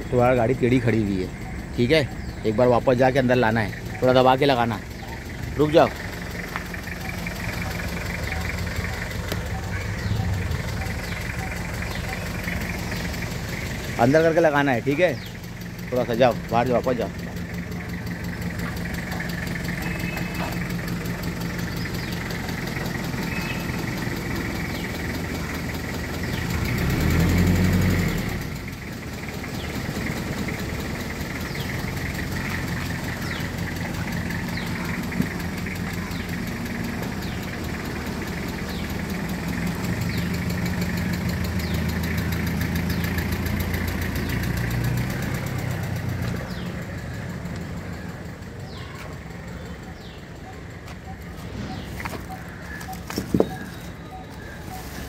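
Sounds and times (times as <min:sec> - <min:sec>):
vehicle engine running: 0:00.0 - 0:55.0.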